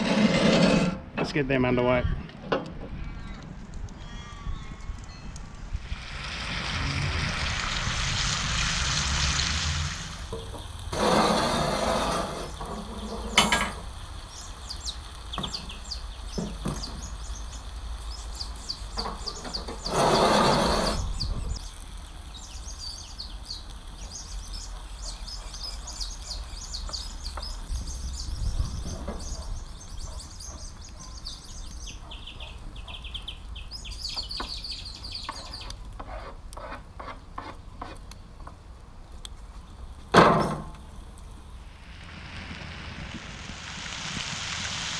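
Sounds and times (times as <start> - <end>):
high chirps and crackles: 3.2 - 11.0, 12.2 - 36.1, 41.1 - 44.9
vegetables sizzling in a pan: 6.0 - 19.9, 41.3 - 44.9.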